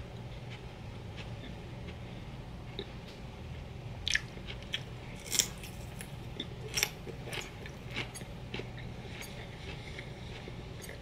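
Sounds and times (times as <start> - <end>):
faint low hum: 0.0 - 11.0
crunching celery: 4.0 - 11.0.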